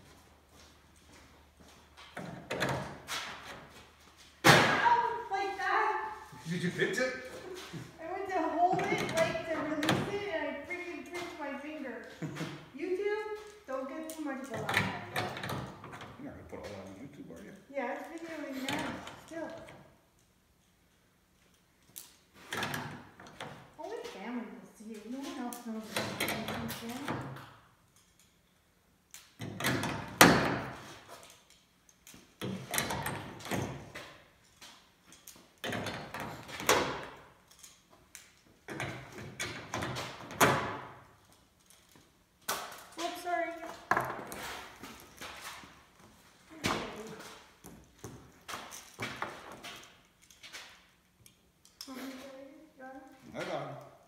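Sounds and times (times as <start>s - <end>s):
knocks and clatters in workshop: 0.0s - 4.9s, 8.6s - 12.7s, 14.2s - 17.0s, 18.2s - 20.0s, 22.2s - 24.4s, 25.0s - 28.4s, 29.3s - 51.4s.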